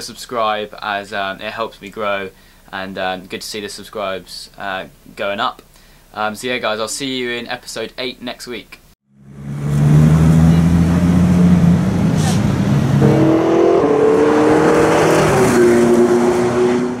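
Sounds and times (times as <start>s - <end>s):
sports car engine running hard: 9.1s - 16.0s.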